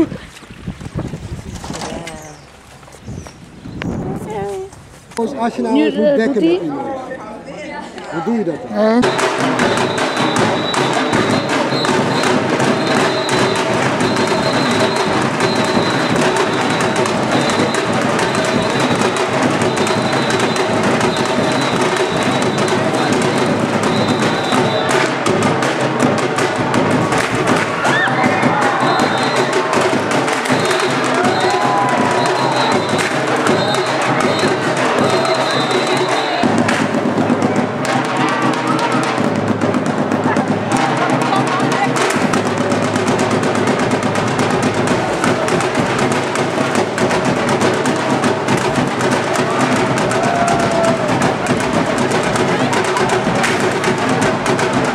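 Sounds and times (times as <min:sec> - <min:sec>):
audience cheering: 0:09.0 - 0:25.1, 0:26.4 - 0:36.9, 0:48.5 - 0:53.6
stick drumming rhythm: 0:09.0 - 0:54.9.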